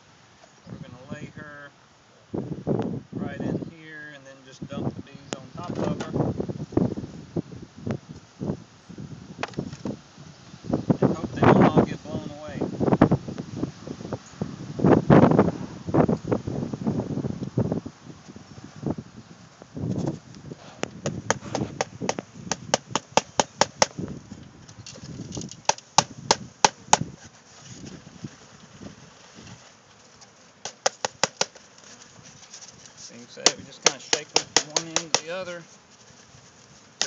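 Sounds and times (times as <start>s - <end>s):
dull thuds and rustling: 19.6s - 24.0s
sharp wooden knocks: 21.0s - 24.0s, 30.6s - 31.6s, 33.5s - 35.4s.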